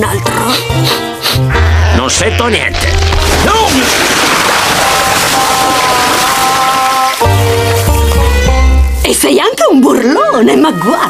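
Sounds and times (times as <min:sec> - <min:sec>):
cartoon hose water spray: 0:00.5 - 0:01.5, 0:03.2 - 0:08.2.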